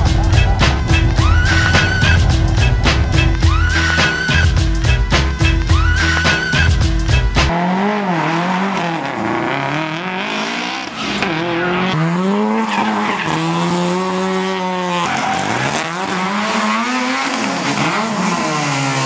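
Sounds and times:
race car engines revving: 0:00.0 - 0:19.0.

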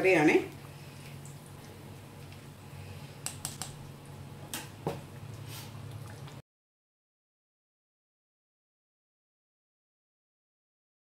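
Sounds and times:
low steady hum: 0:00.0 - 0:06.4.

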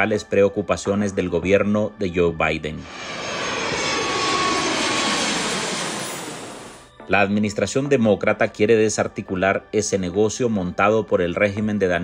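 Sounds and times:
jet airliner passing overhead: 0:02.7 - 0:06.9.

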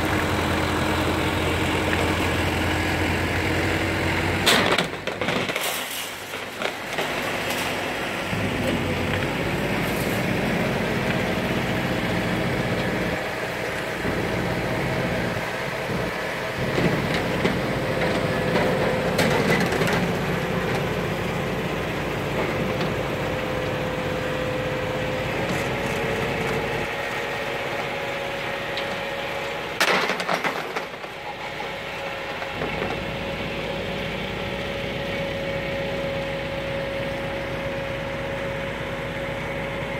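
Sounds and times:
engine running under load: 0:00.0 - 0:39.9.

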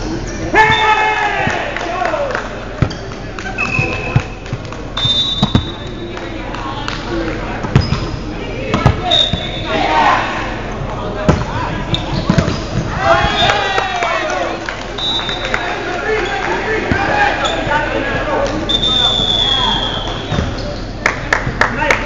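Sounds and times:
players calling out: 0:00.1 - 0:21.0
sneakers squeaking on floor: 0:02.8 - 0:06.9, 0:07.6 - 0:09.8, 0:10.6 - 0:14.4, 0:15.0 - 0:21.0
ball thudding: 0:05.4 - 0:05.7, 0:08.7 - 0:09.4.

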